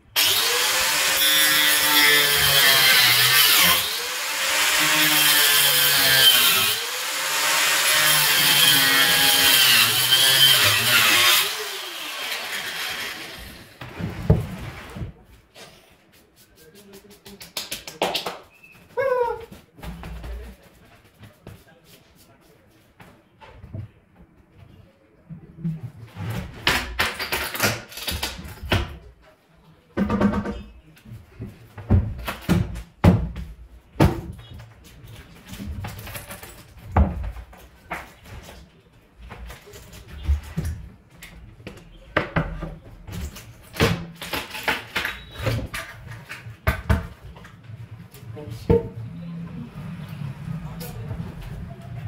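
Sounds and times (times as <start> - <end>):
boards and tools knocking on workbench: 30.0 - 30.6, 31.8 - 34.4.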